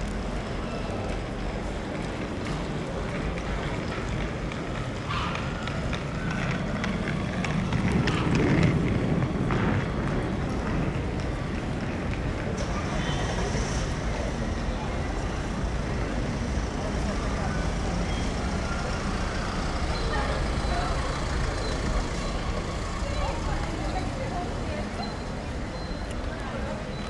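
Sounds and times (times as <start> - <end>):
passers-by talking: 0.0 - 27.0.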